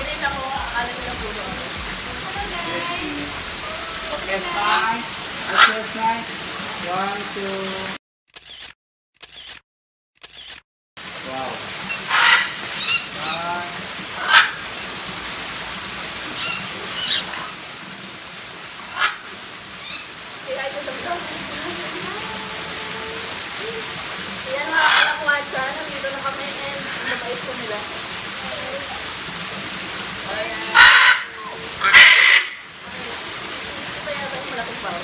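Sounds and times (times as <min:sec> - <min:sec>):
background hiss: 0:00.0 - 0:07.9
parrots squawking: 0:01.5 - 0:06.2, 0:11.9 - 0:13.6, 0:14.2 - 0:14.7, 0:16.3 - 0:17.6, 0:18.9 - 0:20.2, 0:24.6 - 0:25.4, 0:26.7 - 0:29.2, 0:30.3 - 0:32.7.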